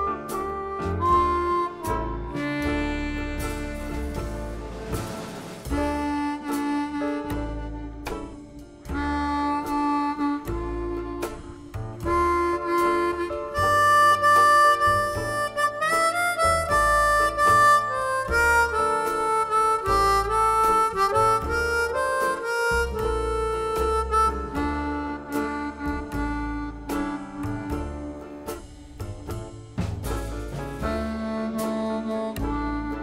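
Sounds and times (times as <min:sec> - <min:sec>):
bass line accompaniment: 0:00.0 - 0:33.0
blues harmonica melody: 0:00.0 - 0:33.0.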